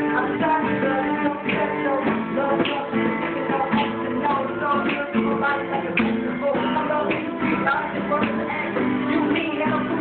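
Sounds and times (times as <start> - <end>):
acoustic guitars strumming: 0.0 - 10.0.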